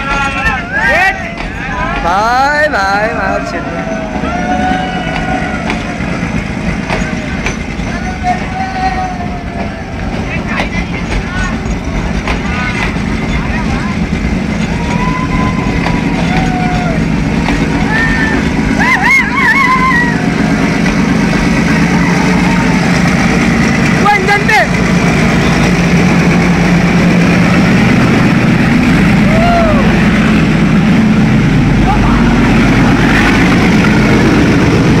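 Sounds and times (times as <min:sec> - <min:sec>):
people shouting and whooping: 0:00.0 - 0:06.5, 0:07.8 - 0:10.2, 0:14.5 - 0:21.0, 0:21.6 - 0:23.5, 0:29.1 - 0:30.3
diesel locomotive engine: 0:00.0 - 0:35.0
train wheels rumbling on rail: 0:00.0 - 0:35.0.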